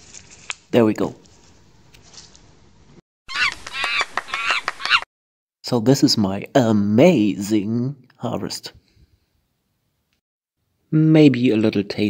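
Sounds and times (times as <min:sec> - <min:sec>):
short high monkey calls: 0:03.3 - 0:05.0.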